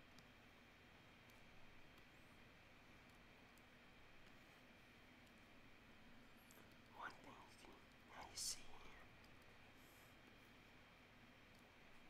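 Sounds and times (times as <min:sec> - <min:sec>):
man whispering: 0:06.9 - 0:09.2.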